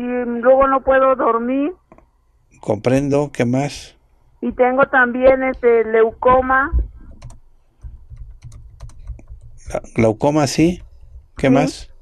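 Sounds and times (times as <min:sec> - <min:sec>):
person speaking: 0:02.6 - 0:07.2, 0:07.8 - 0:12.0
keyboard typing clicks: 0:07.1 - 0:10.0.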